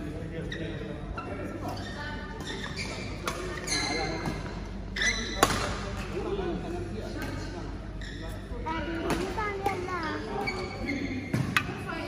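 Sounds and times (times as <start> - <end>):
voices in sports hall: 0.0 - 12.0.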